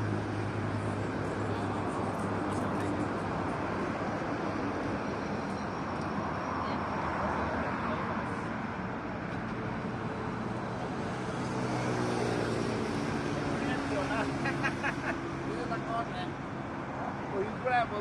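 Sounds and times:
road traffic noise: 0.0s - 18.0s.

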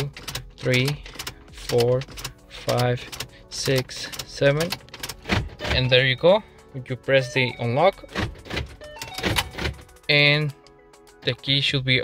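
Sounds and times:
car door locks clunking: 4.1s - 6.0s, 8.1s - 9.8s.

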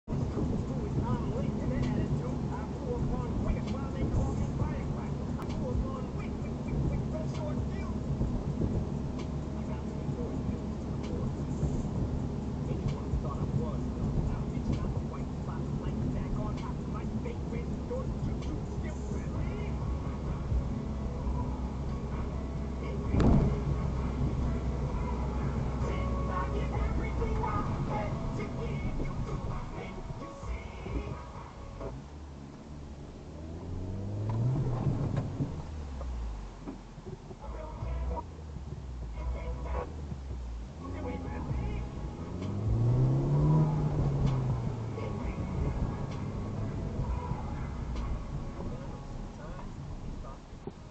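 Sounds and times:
car road and engine rumble: 0.0s - 50.9s.

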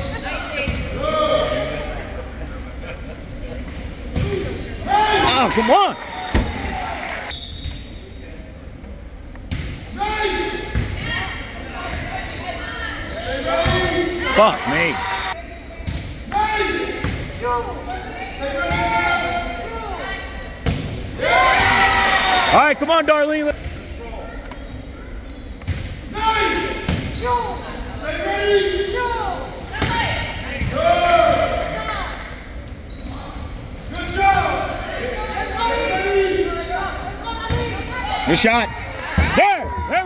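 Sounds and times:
people shouting and calling: 4.8s - 7.3s, 13.4s - 15.4s.

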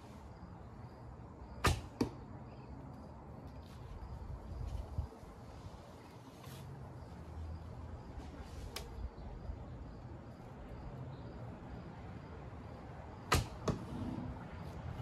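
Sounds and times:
arrow striking target: 1.6s - 2.2s, 13.3s - 14.2s.

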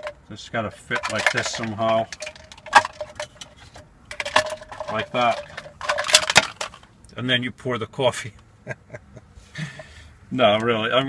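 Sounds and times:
plastic parts clicking and knocking: 0.0s - 6.9s.

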